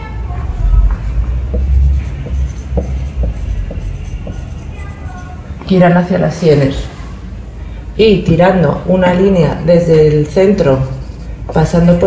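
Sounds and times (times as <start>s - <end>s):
low rumble: 0.2s - 4.1s
marker tapping on whiteboard: 0.9s - 4.6s.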